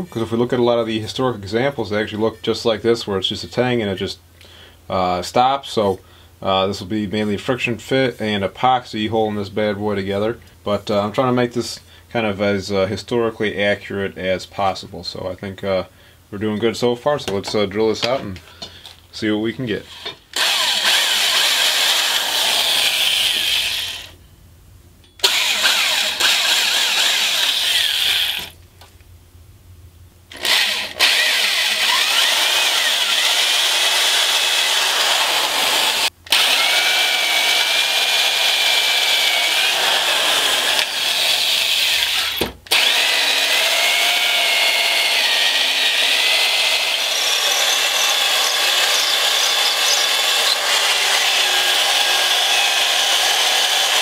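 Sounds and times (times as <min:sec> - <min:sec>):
electric drill boring into wood: 0:19.9 - 0:24.2, 0:25.2 - 0:28.6, 0:30.3 - 0:54.0.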